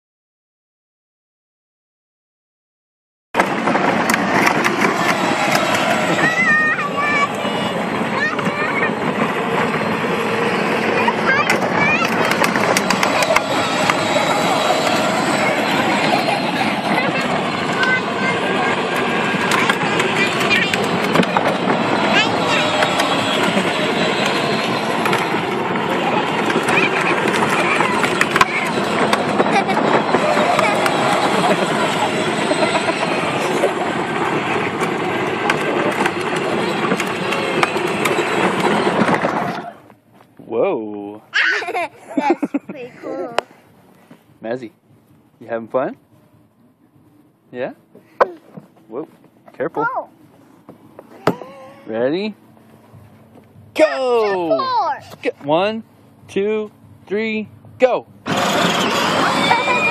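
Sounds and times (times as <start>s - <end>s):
plastic toy wheels rolling on asphalt: 3.4s - 40.4s, 58.2s - 59.9s
children's voices: 4.4s - 34.9s, 41.4s - 43.6s, 51.1s - 51.9s, 53.8s - 55.2s, 58.4s - 59.9s.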